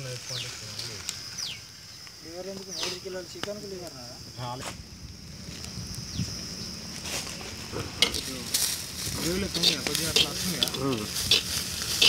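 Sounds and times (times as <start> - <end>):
food sizzling: 6.8 - 12.0
spoon scraping clay pot: 9.5 - 12.0.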